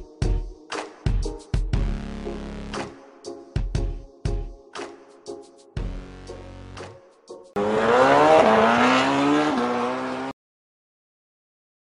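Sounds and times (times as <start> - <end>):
motorcycle engine accelerating: 7.6 - 10.3.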